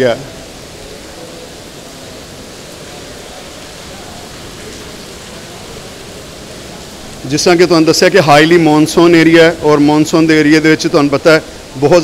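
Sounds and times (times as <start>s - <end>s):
heavy rain hissing: 0.0s - 12.0s.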